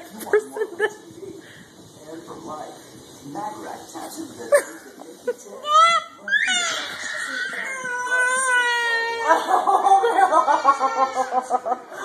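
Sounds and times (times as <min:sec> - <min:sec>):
baby cooing: 0:05.6 - 0:09.3.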